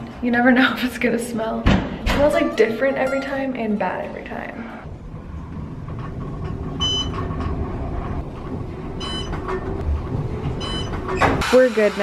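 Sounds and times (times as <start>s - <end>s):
elevator low rumble: 2.2s - 11.4s.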